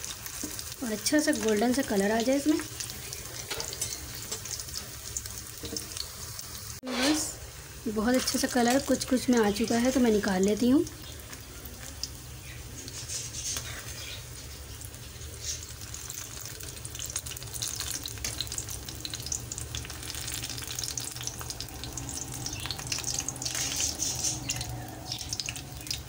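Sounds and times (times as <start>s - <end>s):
frying in oil sizzling: 0.0s - 26.0s.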